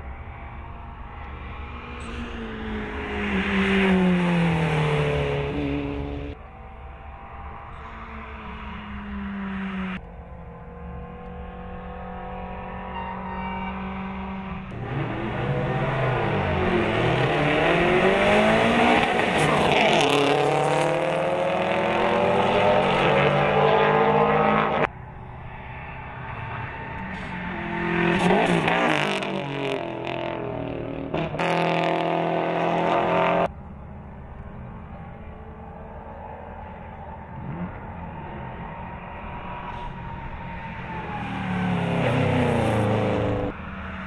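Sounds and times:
rally car engines revving past: 0.2s - 33.9s, 34.5s - 44.0s.

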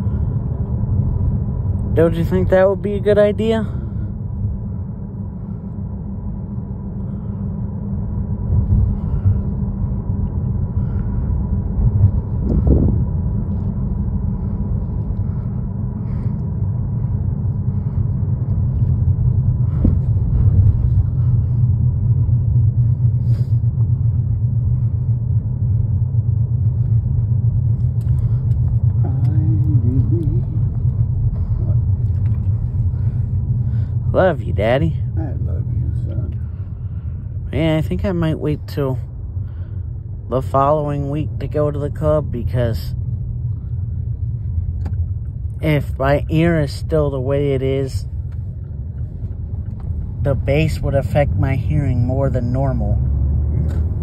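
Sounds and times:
road and engine rumble in car: 0.0s - 54.0s.

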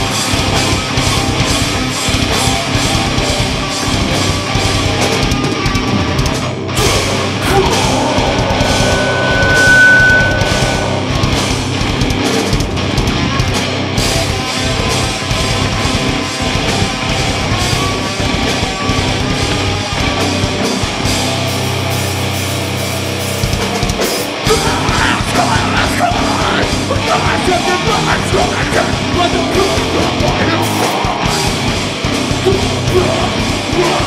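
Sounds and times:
bass guitar: 0.0s - 34.0s
distorted electric guitars: 0.0s - 34.0s
drums: 0.0s - 34.0s
high steady tone: 7.4s - 12.0s.

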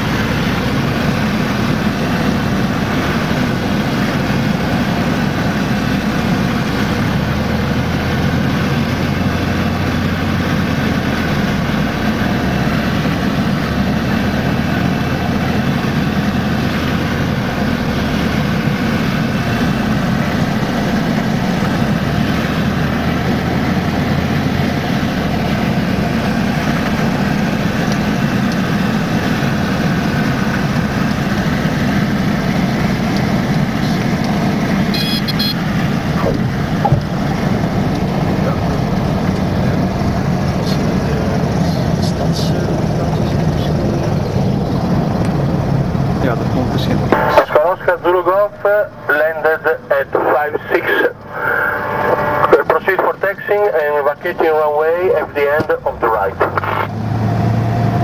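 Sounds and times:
light aircraft engine and propeller: 0.0s - 58.0s.

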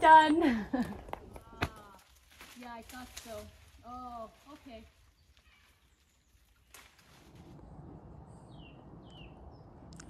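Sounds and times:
falling bird chirps: 5.1s - 9.8s
low rumble: 7.0s - 10.0s.

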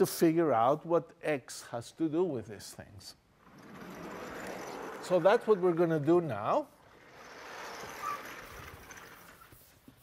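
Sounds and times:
eraser squeak: 7.7s - 9.9s.

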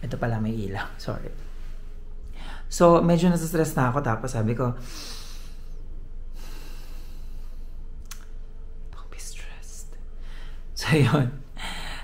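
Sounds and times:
man breathing out slowly: 4.8s - 7.8s.

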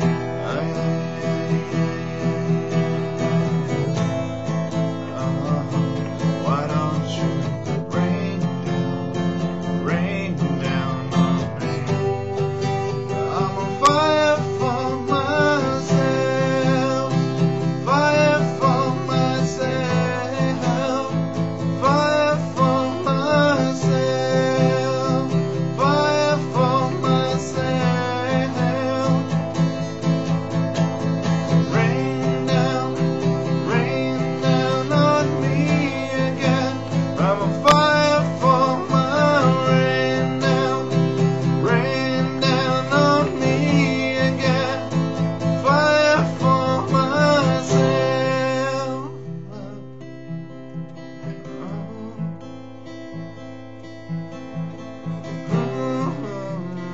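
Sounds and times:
man singing: 0.0s - 50.2s, 51.2s - 52.7s, 55.1s - 56.9s
acoustic guitar playing: 0.0s - 56.9s.

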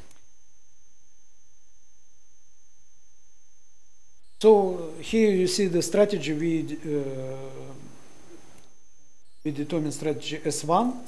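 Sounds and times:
electrical hum: 0.0s - 11.0s
faint high-pitched whine: 0.0s - 11.0s.

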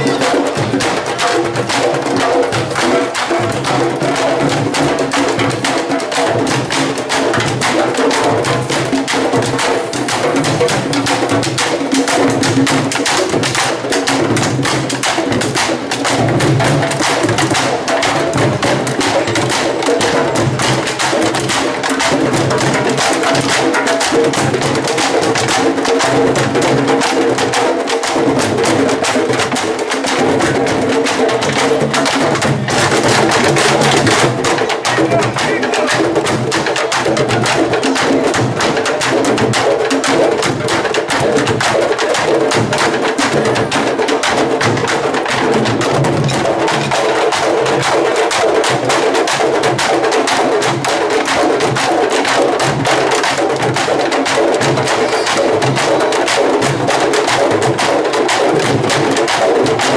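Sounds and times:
drum troupe playing: 0.0s - 59.9s.

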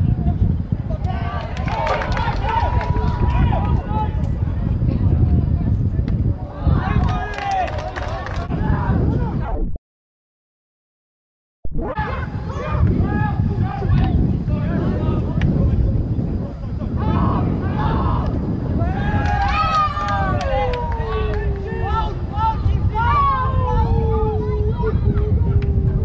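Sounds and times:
wind on microphone: 0.0s - 9.8s, 11.7s - 26.0s
players shouting: 1.0s - 4.3s, 6.5s - 9.1s, 16.9s - 25.2s
long shout falling in pitch: 18.8s - 24.8s.

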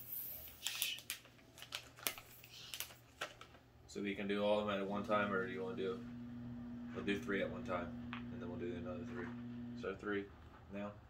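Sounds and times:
plastic snack bag rustling: 0.4s - 3.8s.

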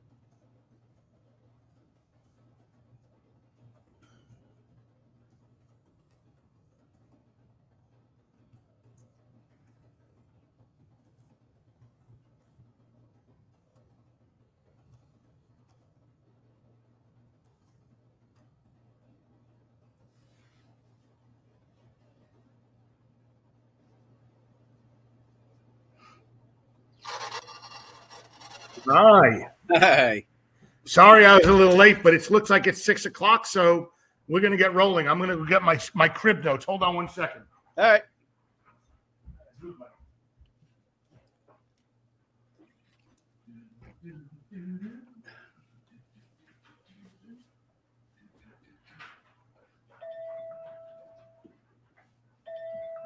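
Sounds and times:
rubbing on a microphone: 27.0s - 29.6s
man speaking: 28.8s - 30.2s, 30.9s - 38.0s.

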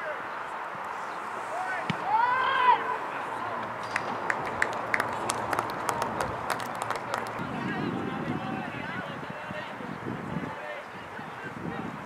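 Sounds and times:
spectators clapping: 3.8s - 7.7s.

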